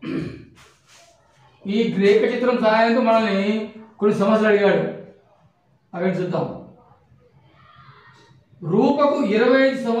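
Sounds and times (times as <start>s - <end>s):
man speaking: 1.6s - 5.1s, 5.9s - 6.7s, 8.6s - 10.0s.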